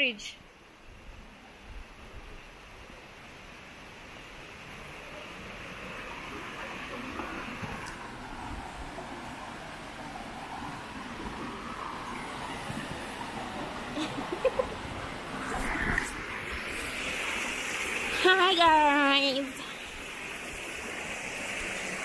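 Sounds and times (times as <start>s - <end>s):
water rushing over rocks: 3.0s - 22.0s.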